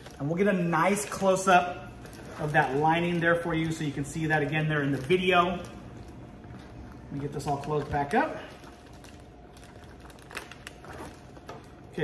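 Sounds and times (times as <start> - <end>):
bag rustling: 0.0 - 11.5.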